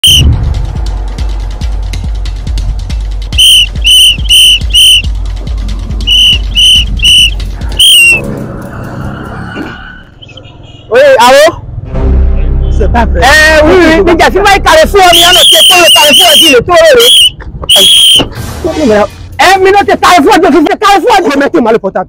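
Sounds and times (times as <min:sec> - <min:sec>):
shrill whistle blasts: 0:00.0 - 0:00.3, 0:03.4 - 0:05.1, 0:06.1 - 0:08.2, 0:15.0 - 0:18.4
music with heavy bass beat: 0:00.0 - 0:08.4.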